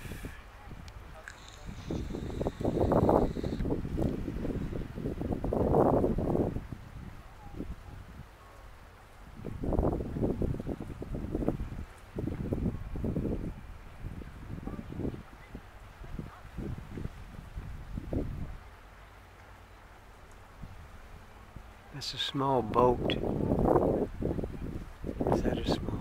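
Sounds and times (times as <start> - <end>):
wind buffeting microphone: 0.0 - 8.5, 9.1 - 18.8, 20.1 - 22.0, 22.6 - 26.0.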